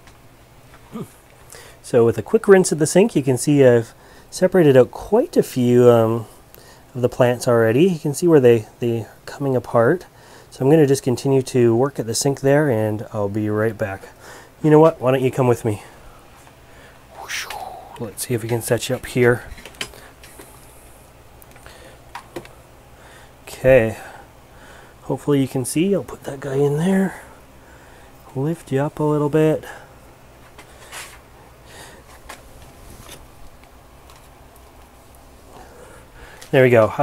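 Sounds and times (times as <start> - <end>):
faint background hiss: 0.0 - 37.0
low steady hum: 0.0 - 37.0
person breathy sound: 17.1 - 18.1.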